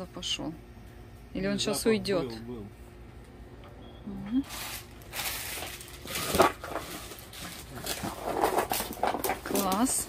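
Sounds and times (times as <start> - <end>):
plastic bags crinkling: 4.5 - 10.0.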